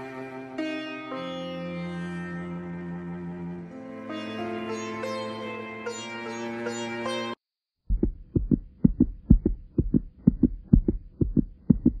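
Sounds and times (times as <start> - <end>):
heartbeat thumps: 7.8 - 12.0.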